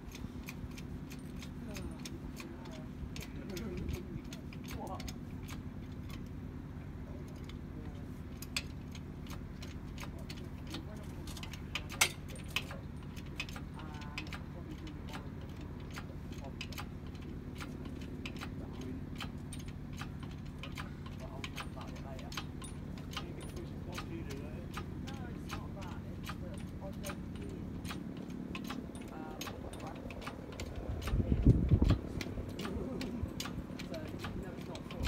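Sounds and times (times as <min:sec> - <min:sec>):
low mechanical drone: 0:00.0 - 0:35.0.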